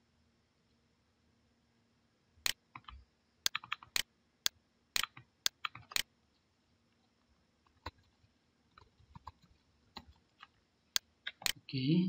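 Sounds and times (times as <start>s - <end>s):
mouse and keyboard clicking: 2.5s - 4.0s, 5.0s - 6.1s, 8.8s - 11.6s.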